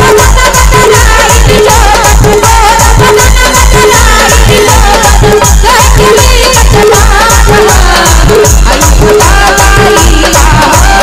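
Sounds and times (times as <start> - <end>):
electronic kick-drum beat: 0.0 - 11.0.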